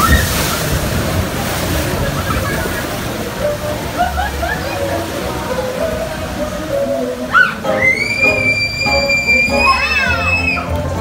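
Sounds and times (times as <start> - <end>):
water rushing and splashing: 0.0 - 11.0.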